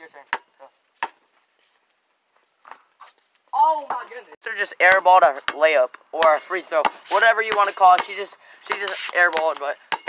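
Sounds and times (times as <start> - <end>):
basketball bouncing: 4.8 - 10.0.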